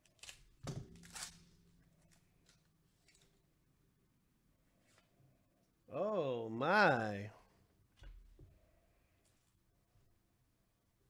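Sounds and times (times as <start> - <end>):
wrapper crinkling: 0.0 - 3.4.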